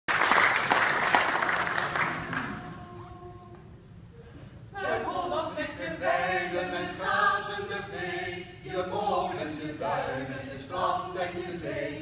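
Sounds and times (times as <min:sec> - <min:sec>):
audience applause: 0:00.1 - 0:02.7.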